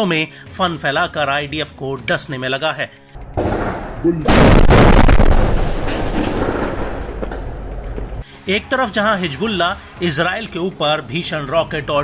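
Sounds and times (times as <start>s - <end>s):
large explosion: 3.4s - 7.7s.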